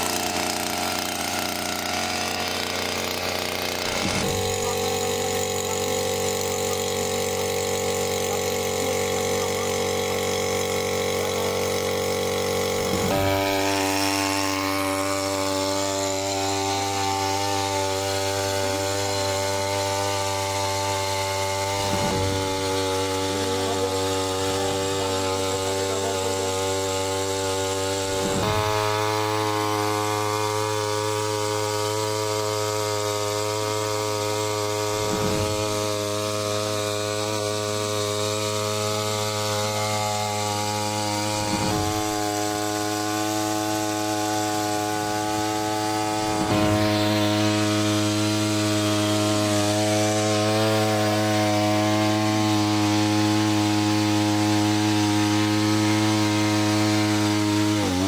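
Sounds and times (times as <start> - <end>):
jet of water pumping: 0.0 - 58.0
small engine running at high speed: 0.0 - 58.0.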